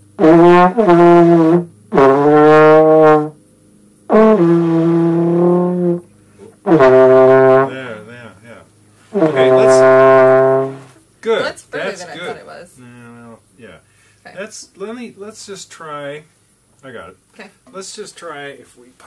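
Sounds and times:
trombone long notes: 0.0s - 3.4s, 4.1s - 8.1s, 9.1s - 11.0s.

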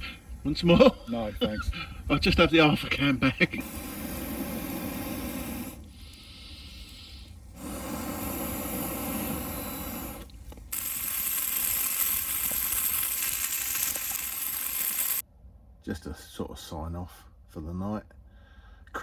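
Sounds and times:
campfire burning: 0.0s - 15.2s
steak sizzling in a frying pan: 10.7s - 15.2s.

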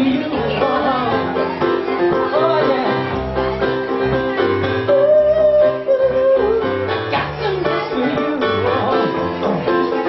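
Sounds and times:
keyboard accompaniment: 0.0s - 10.0s
man singing a long high note: 4.9s - 6.7s.

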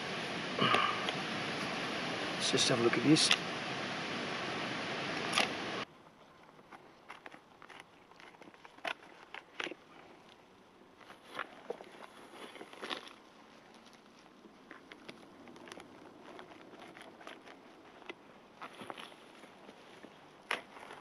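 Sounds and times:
loud steady rushing noise: 0.0s - 5.8s
knife shaving wood: 6.4s - 10.4s, 11.0s - 21.0s.

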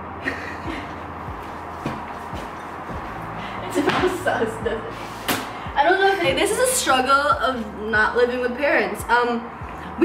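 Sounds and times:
young women laughing: 0.2s - 1.2s, 3.6s - 5.1s
sharp slap: 5.2s - 5.6s.

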